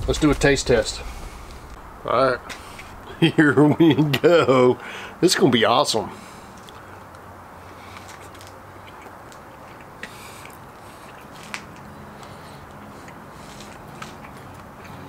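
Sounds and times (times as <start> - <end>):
background hiss: 0.0 - 5.3
man chewing food: 6.4 - 15.0.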